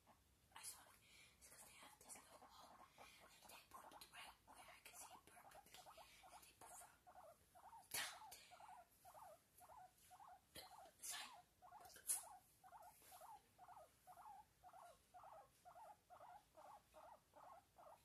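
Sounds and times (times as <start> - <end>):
small pet squeaky chirps: 4.9 - 18.0.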